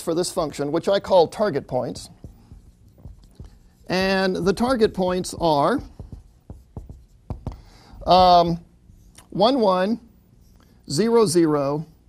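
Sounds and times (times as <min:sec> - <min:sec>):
writing taps on a board: 0:02.1 - 0:08.6.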